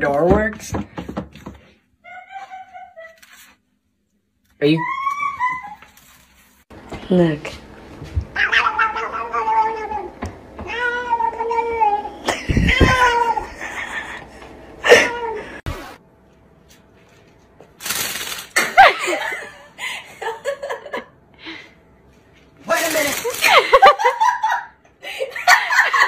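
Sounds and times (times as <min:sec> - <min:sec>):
cat yowling: 0:04.7 - 0:05.8, 0:08.4 - 0:13.5.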